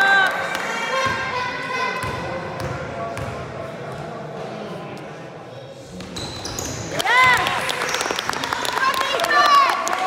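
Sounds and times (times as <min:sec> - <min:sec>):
shoes squeaking on floor: 0:06.0 - 0:06.9.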